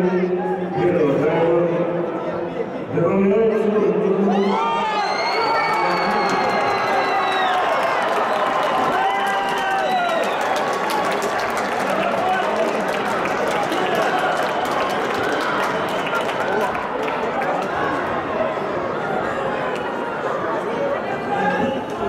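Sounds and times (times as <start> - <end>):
crowd shouting and cheering: 4.2 - 22.0.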